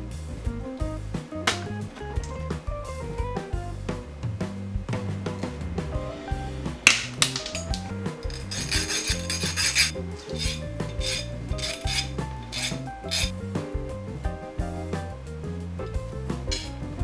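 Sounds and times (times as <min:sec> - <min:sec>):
background music: 0:00.0 - 0:17.0
pliers snapping through bolt: 0:06.9 - 0:13.3
hand file rasping on metal: 0:08.2 - 0:13.4.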